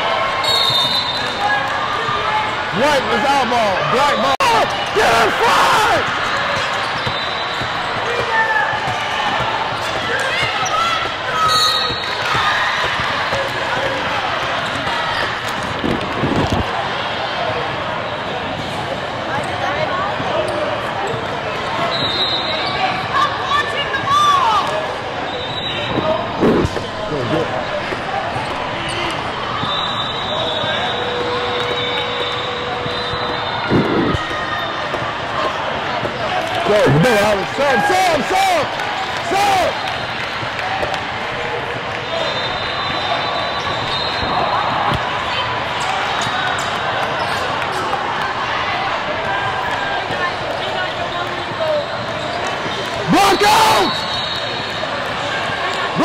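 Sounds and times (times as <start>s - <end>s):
crowd chatter and shouts: 0.0s - 56.0s.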